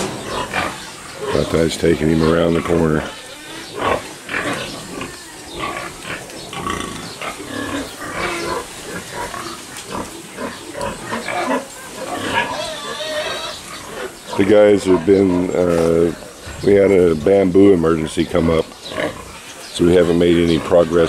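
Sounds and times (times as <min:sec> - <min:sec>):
pigs grunting and squealing: 0:00.0 - 0:21.0.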